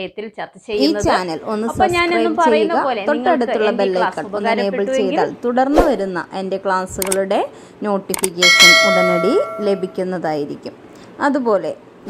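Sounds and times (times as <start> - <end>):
click: 7.0 - 7.2, 8.1 - 8.3
bright bell chime: 8.4 - 10.0.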